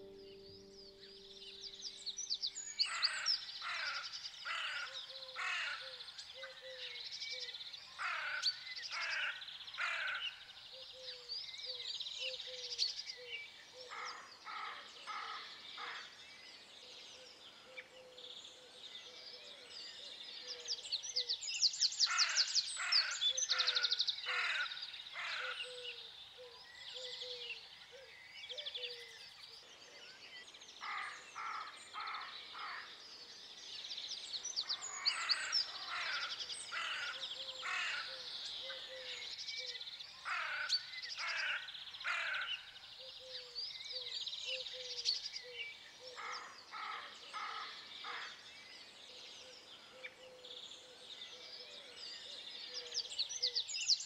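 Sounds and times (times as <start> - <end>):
small birds chirping: 0.0 - 54.0
harsh bird calls: 22.0 - 29.5, 34.6 - 48.4.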